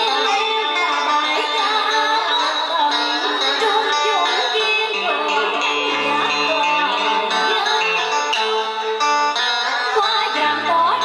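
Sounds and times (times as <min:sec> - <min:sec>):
amplified backing music: 0:00.0 - 0:11.0
woman singing into a microphone: 0:00.0 - 0:11.0.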